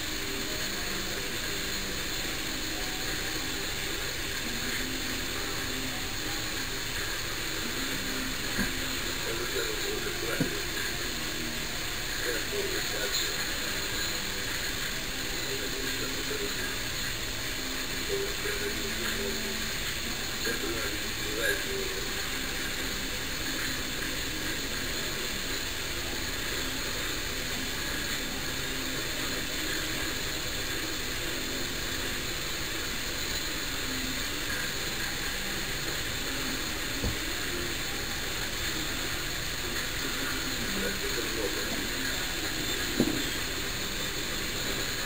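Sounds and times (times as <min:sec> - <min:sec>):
outdoor background hiss: 0:00.0 - 0:45.0.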